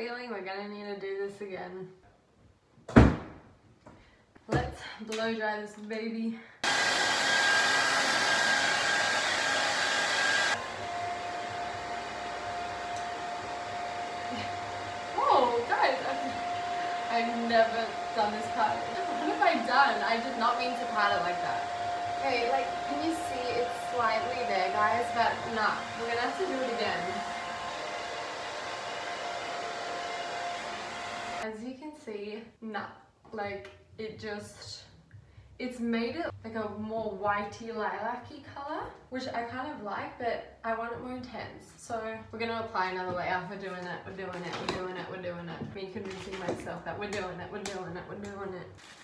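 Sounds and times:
hair dryer blowing: 0:06.6 - 0:31.4, 0:44.1 - 0:45.4, 0:46.0 - 0:49.0.

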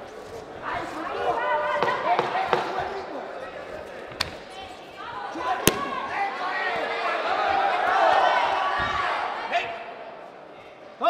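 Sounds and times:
people shouting: 0:05.4 - 0:09.7.

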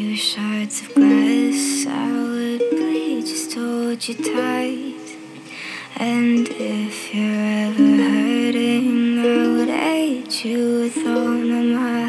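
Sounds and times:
ukulele playing: 0:00.0 - 0:12.0.

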